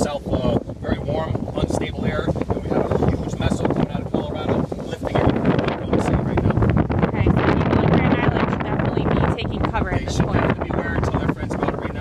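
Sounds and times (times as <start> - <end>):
man talking: 0.0 - 6.6, 10.0 - 12.0.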